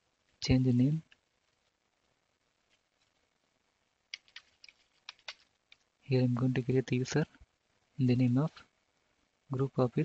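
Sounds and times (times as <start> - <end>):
keyboard key taps: 4.1 - 5.8.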